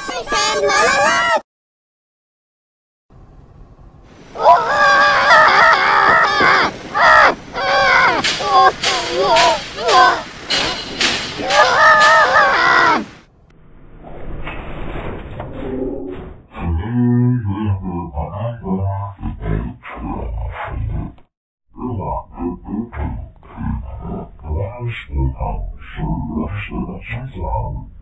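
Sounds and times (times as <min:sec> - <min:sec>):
pitch-shifted cartoon voices: 0:00.0 - 0:01.4, 0:04.4 - 0:10.8, 0:16.5 - 0:21.2, 0:21.8 - 0:28.0
higher singing: 0:04.3 - 0:13.2.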